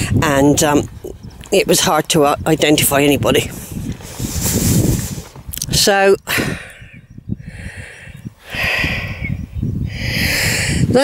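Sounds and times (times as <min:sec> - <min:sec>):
wind rumble on microphone: 0:00.0 - 0:11.0
person breathing: 0:03.6 - 0:05.3, 0:06.3 - 0:11.0.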